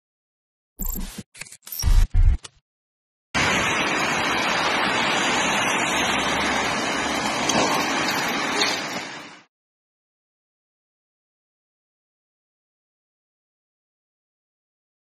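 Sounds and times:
rain on a wet street: 3.4 - 9.5.

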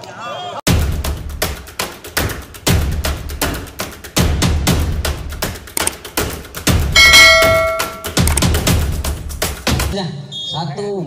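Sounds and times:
bell-like chime: 7.0 - 8.1.

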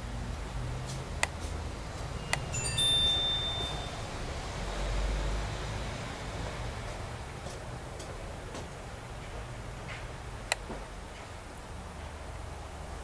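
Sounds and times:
high metallic chime tones: 2.2 - 4.2.

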